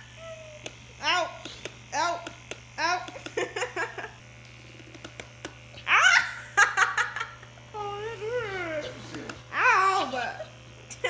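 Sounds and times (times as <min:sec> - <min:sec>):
massage gun humming: 0:00.0 - 0:11.0
girl laughing: 0:03.2 - 0:04.2, 0:05.8 - 0:07.6.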